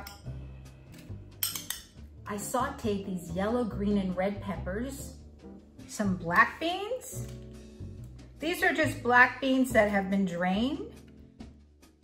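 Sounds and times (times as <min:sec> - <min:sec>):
metal spoon clinking glass bowl: 0:00.0 - 0:00.4, 0:01.4 - 0:02.0
soft background music: 0:00.0 - 0:12.0.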